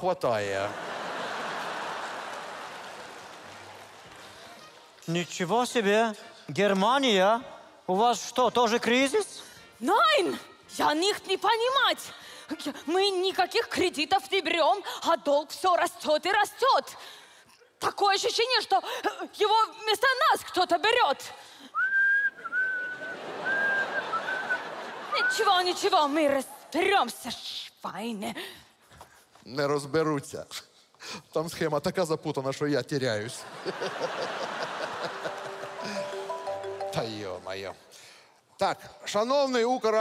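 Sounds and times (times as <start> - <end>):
audience applauding: 0.6 - 5.1, 33.7 - 37.2
man whistling high note: 21.8 - 24.7.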